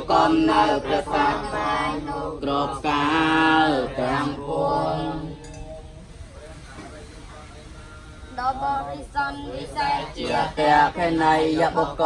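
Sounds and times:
monks chanting together: 0.0 - 5.5, 8.6 - 12.0.

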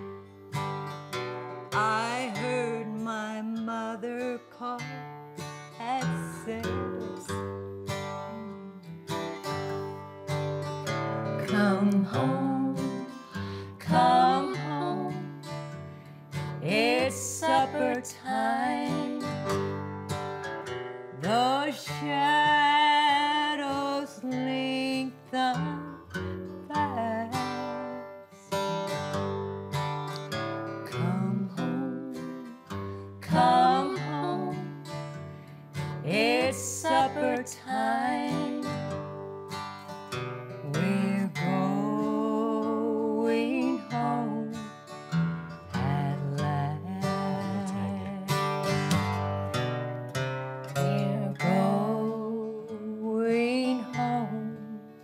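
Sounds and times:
acoustic guitar strummed and picked: 0.0 - 55.0
person singing a hymn: 11.4 - 15.4, 16.6 - 19.2, 33.2 - 34.9, 36.0 - 38.8, 40.7 - 44.6.

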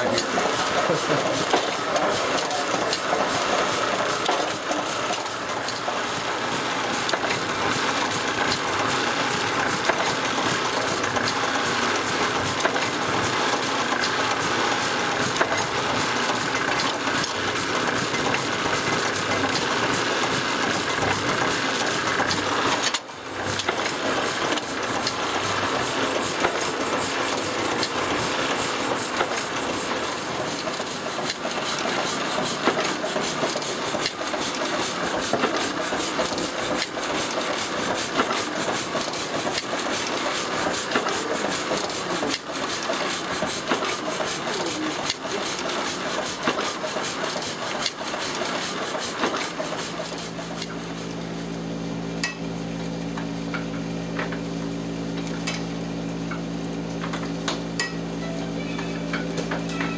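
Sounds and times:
printing press clicking and clattering: 0.0 - 59.9.

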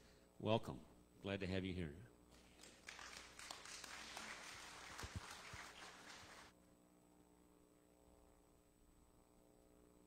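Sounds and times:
faint applause: 2.5 - 6.6.

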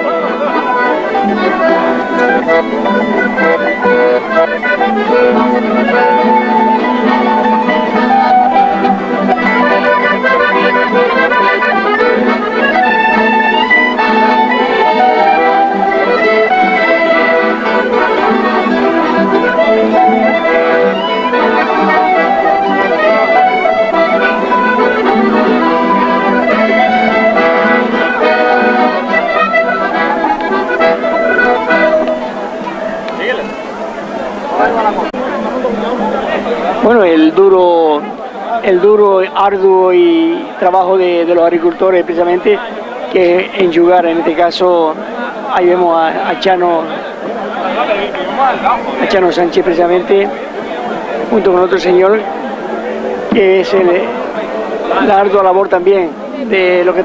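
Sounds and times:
folk accordion and guitars: 0.0 - 57.0.

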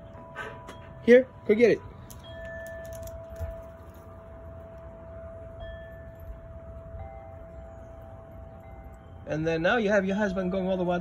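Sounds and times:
chimes ringing: 0.0 - 11.0.

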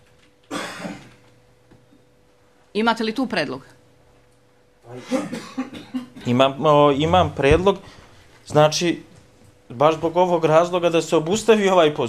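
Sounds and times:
man clearing throat: 0.5 - 1.2, 4.9 - 6.4
man coughing: 0.5 - 1.2, 4.9 - 6.4.

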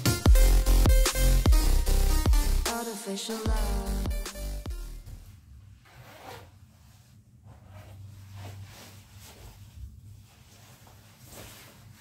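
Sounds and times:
electronic music: 0.0 - 5.2
clothing rustling: 5.2 - 12.0.

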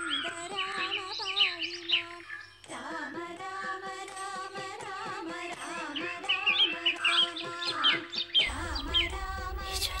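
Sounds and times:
film music with held tones: 0.0 - 10.0
bird chirps: 6.0 - 10.0
low rumble: 8.5 - 10.0.

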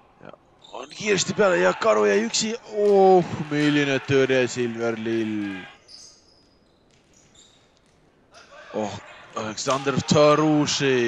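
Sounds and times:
shoe squeaks on wooden court: 5.8 - 8.5.

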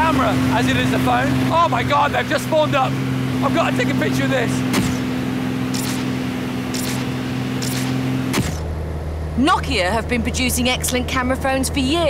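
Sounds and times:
propeller plane engine droning: 0.0 - 12.0.

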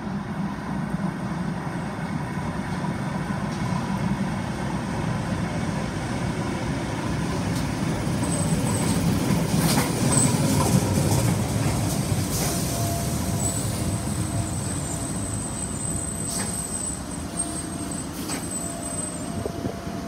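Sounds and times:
train wheels rumbling on rails: 0.0 - 20.0
faint high squeals: 12.4 - 20.0.

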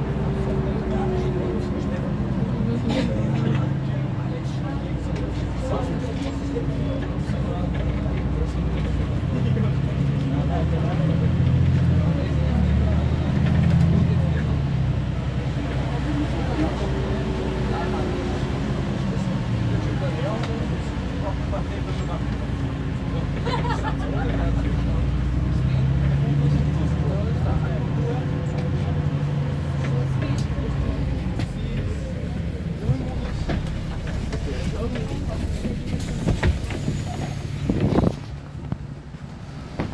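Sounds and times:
bus engine drone: 0.0 - 39.9
faint passenger voices: 0.0 - 39.9
road rumble: 0.0 - 39.9.

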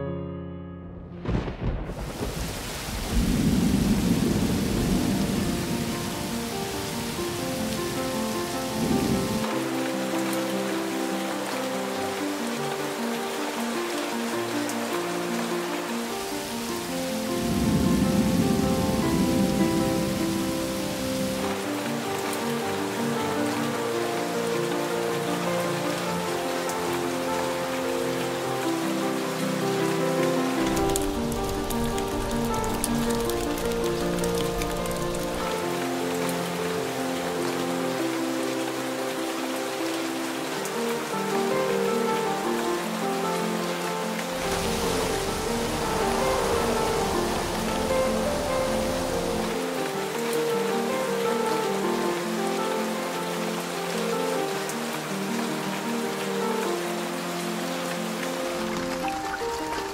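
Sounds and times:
slow instrumental music: 0.0 - 1.8, 4.7 - 59.9
steady rain falling: 1.2 - 59.9
low rumble: 44.4 - 49.6.

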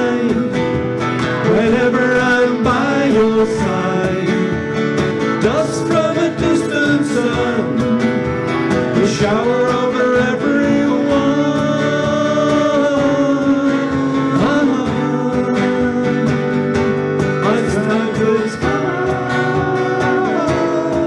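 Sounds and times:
cajon percussion: 0.0 - 21.0
person singing: 0.0 - 21.0
strummed acoustic guitars: 0.0 - 21.0.

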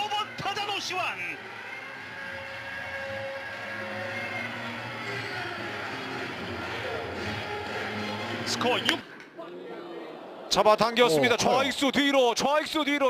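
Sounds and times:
crowd voices and cheering: 0.0 - 13.0.

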